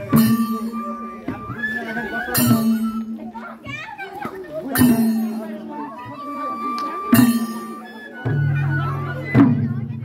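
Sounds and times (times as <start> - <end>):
children chattering: 0.0 - 10.0
hand drums: 0.0 - 10.0.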